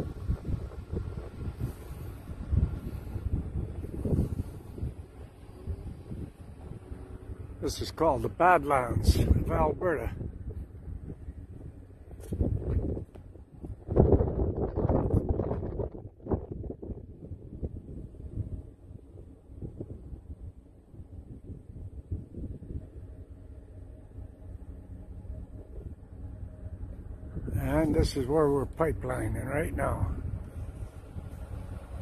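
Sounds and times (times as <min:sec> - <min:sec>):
faint steady hum: 0:00.0 - 0:32.0
wind buffeting microphone: 0:00.0 - 0:32.0.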